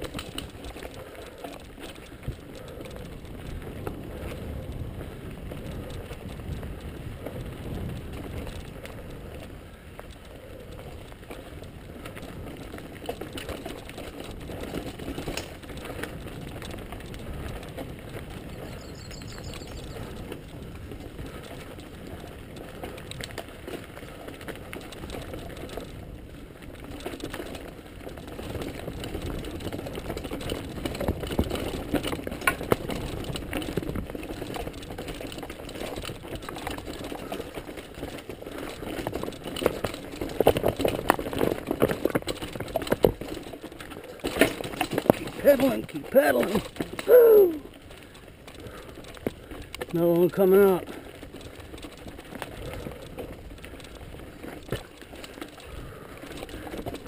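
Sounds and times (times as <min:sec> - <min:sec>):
bike tyres rattling on stones: 0:00.0 - 0:57.0.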